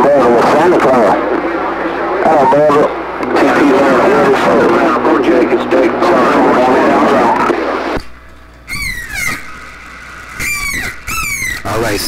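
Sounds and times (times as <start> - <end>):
noisy radio signal: 0.0 - 8.2, 11.6 - 12.0
falling electronic chirps: 8.6 - 11.8.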